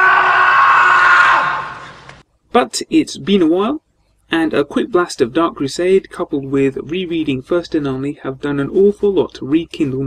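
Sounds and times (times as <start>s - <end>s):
person screaming: 0.0s - 2.0s.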